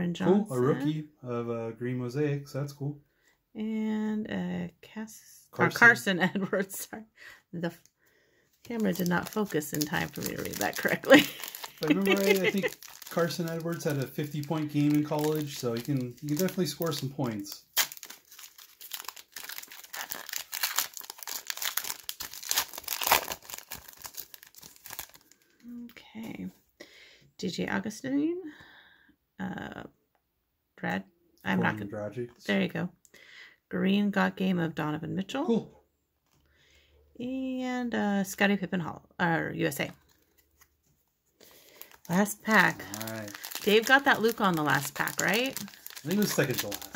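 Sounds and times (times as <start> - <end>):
foil wrapper crinkling and tearing: 8.6 - 25.7, 41.4 - 46.9.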